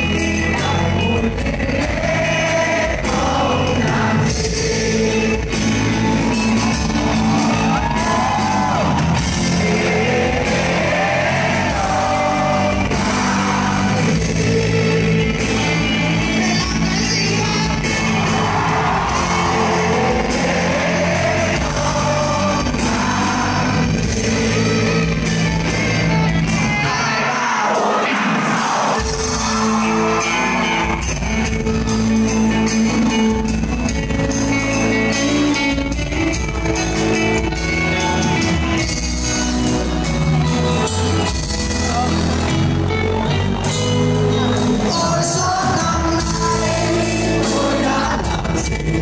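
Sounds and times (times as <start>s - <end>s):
rock band playing live: 0.0s - 49.0s.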